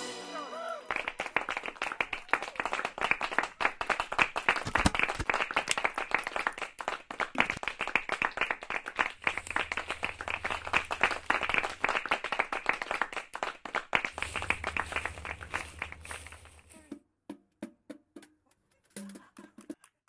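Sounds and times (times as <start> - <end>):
group of people clapping: 0.5 - 16.9, 19.2 - 20.0.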